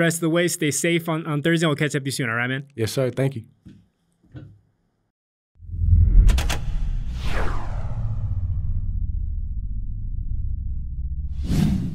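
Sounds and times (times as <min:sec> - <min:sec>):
whoosh sweeping down: 0:05.6 - 0:10.5
deep bass rumble: 0:05.6 - 0:11.5.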